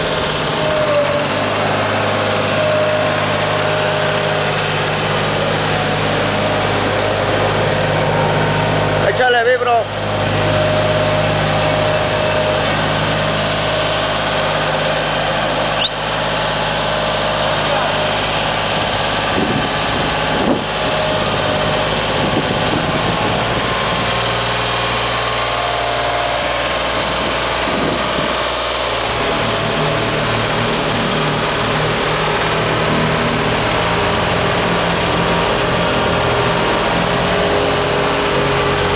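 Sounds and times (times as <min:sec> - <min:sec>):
road roller engine running: 0:00.0 - 0:38.9.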